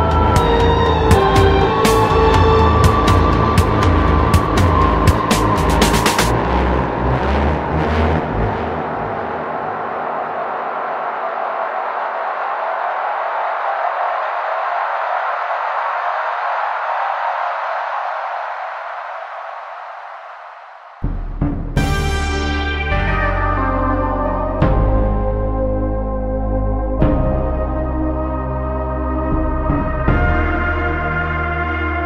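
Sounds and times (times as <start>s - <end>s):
synthwave music: 0.0s - 17.0s, 20.8s - 32.0s.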